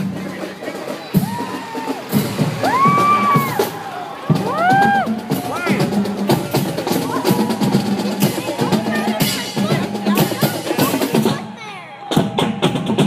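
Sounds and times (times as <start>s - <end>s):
drums beating: 0.0s - 13.0s
marching band playing: 0.0s - 13.0s
loud rising and falling calls: 1.1s - 10.8s
trombones and brass: 5.1s - 11.6s.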